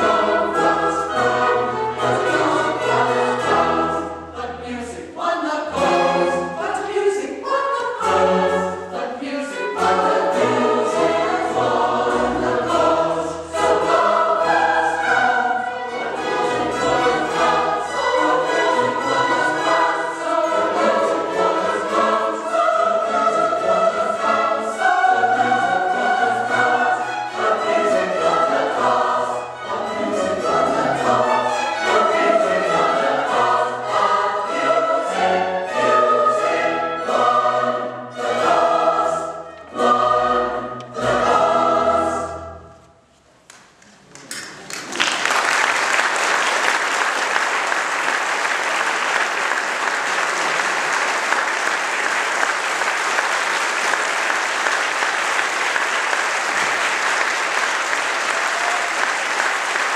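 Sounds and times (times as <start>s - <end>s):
choir singing: 0.0s - 42.8s
string orchestra: 0.0s - 42.8s.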